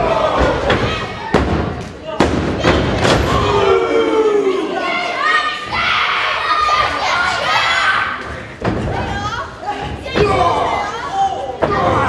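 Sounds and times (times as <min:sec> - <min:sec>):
crowd shouting: 0:02.6 - 0:08.2.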